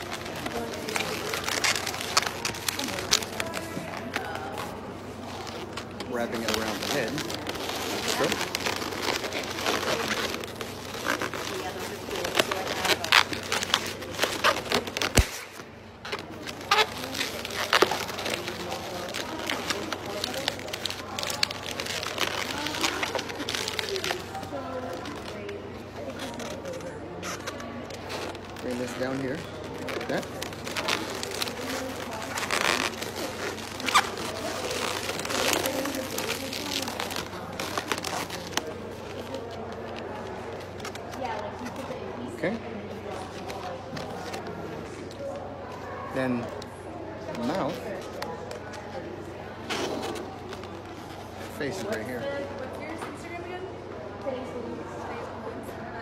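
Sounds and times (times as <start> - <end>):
balloons squeaking and creaking: 0.0 - 52.9.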